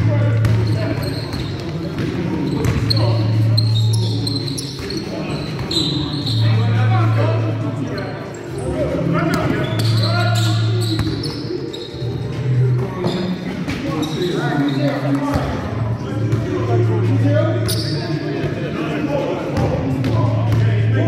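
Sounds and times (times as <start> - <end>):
sneakers squeaking: 0.0 - 18.8
players calling out: 0.0 - 21.0.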